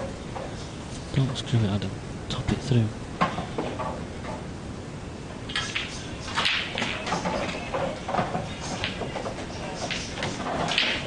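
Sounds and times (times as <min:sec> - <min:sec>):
pool balls knocking: 0:03.2 - 0:04.5, 0:05.5 - 0:11.0.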